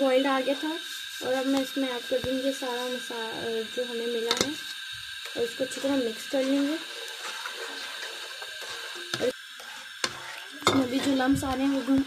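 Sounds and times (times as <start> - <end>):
spatula scraping pan: 5.6 - 12.0.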